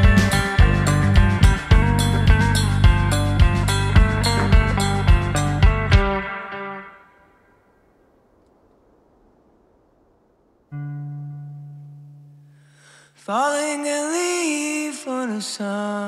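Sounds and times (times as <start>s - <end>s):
rock band playing: 0.0s - 6.5s
low sustained note: 0.0s - 7.2s, 10.7s - 12.7s.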